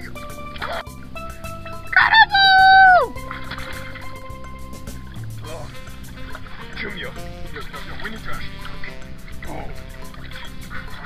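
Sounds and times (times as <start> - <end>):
background music: 0.0 - 11.0
loud high-pitched cry: 2.0 - 3.1.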